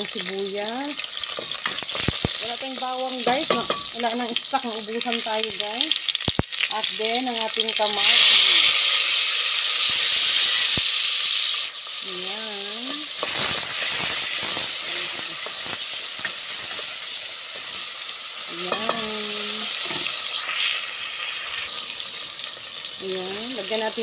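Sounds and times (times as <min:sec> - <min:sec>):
vegetables sizzling in oil: 0:00.0 - 0:24.0
utensil scraping metal pot: 0:12.8 - 0:21.8.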